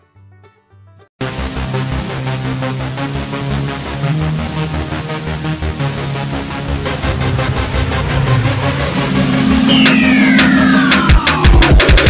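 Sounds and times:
electronic background music: 1.2s - 12.0s
falling synth sweep: 1.2s - 12.0s
low held synth note: 3.9s - 11.5s.

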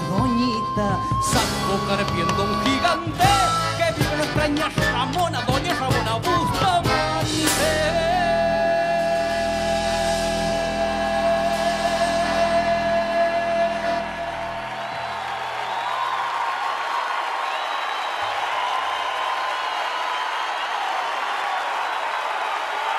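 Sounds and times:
audience applauding and cheering: 6.4s - 22.9s.

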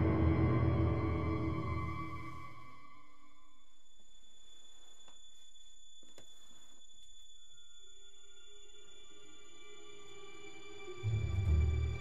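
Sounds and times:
low sustained drone: 0.0s - 3.6s.

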